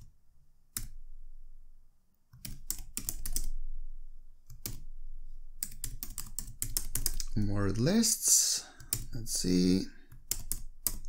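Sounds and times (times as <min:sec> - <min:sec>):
computer keyboard typing: 0:00.7 - 0:01.0, 0:02.3 - 0:03.6, 0:04.5 - 0:04.9, 0:05.6 - 0:07.4, 0:08.8 - 0:11.0.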